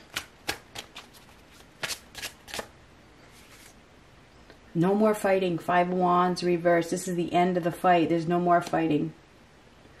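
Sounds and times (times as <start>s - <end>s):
playing cards snapping: 0.0s - 2.7s.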